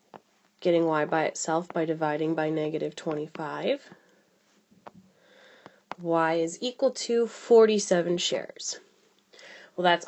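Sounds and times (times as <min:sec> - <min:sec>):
faint breath drawn in: 0:05.1 - 0:05.9, 0:09.3 - 0:09.8.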